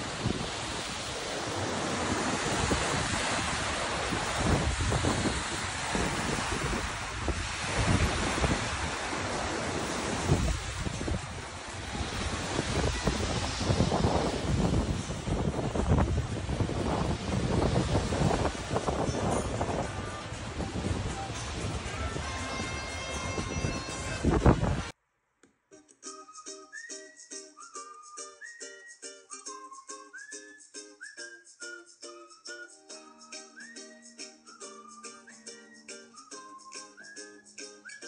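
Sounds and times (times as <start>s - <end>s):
surf rushing: 0.0s - 24.9s
wind buffeting microphone: 0.0s - 24.9s.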